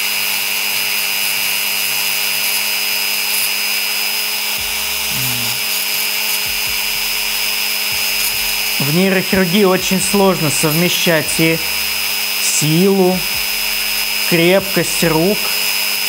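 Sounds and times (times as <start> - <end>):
rotary tool grinding eggshell: 0.0 - 16.0.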